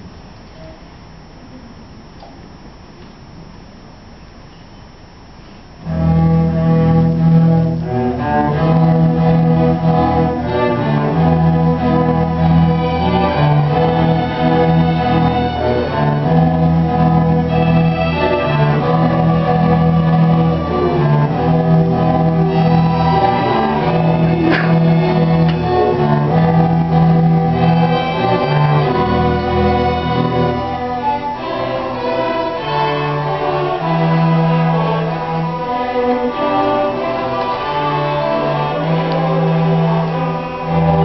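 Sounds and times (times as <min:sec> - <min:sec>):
string orchestra playing: 0:05.8 - 0:41.0.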